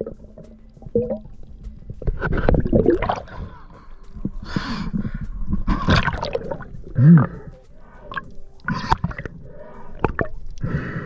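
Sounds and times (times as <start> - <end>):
water sloshing and bubbling: 0.0 - 11.0
rushing bursts of bubbles: 2.3 - 3.5, 5.7 - 7.3, 8.1 - 10.4.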